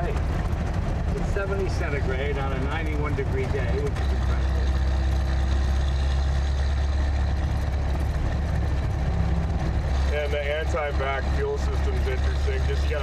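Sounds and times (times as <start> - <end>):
car engine droning: 0.0 - 13.0
road noise: 0.0 - 13.0.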